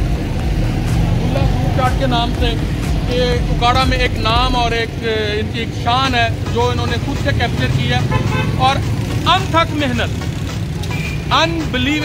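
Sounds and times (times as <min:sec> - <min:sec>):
road traffic rumble: 0:00.0 - 0:12.0
man talking: 0:01.2 - 0:10.2, 0:11.3 - 0:12.0.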